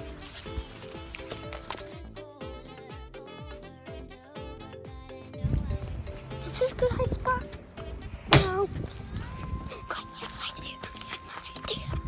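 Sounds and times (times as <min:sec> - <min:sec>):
low kick drum beat: 0:00.0 - 0:09.6
sustained chords: 0:00.0 - 0:10.1.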